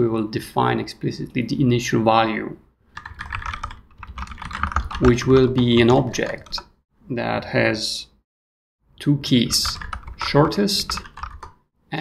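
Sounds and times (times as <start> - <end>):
typing on computer keyboard: 2.9 - 6.7, 9.5 - 11.6.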